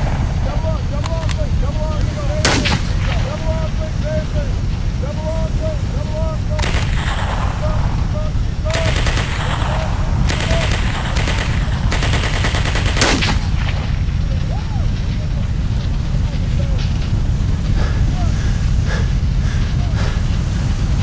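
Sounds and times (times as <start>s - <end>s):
sharp crack: 0.0s - 20.8s
low battle rumble: 0.0s - 21.0s
machine-gun fire: 2.4s - 3.6s, 6.6s - 7.9s, 8.7s - 14.3s.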